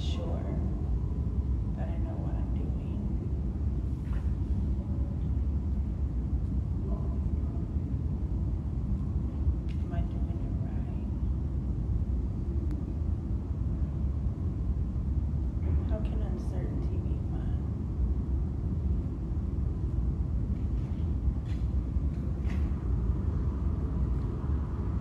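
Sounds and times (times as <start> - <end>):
low rumble of room noise: 0.0 - 25.0.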